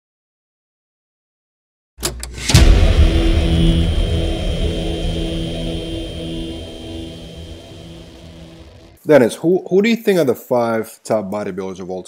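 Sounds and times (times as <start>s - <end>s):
sudden hit: 2.0s - 9.0s.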